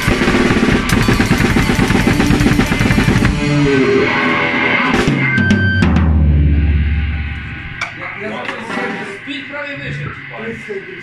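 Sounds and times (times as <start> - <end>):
bass guitar: 0.0 - 10.6
drum kit playing: 0.0 - 10.6
electric guitar: 0.0 - 10.7.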